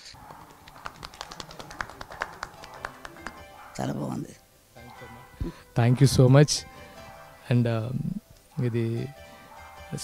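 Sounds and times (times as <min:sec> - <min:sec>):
people clapping: 0:00.2 - 0:03.6.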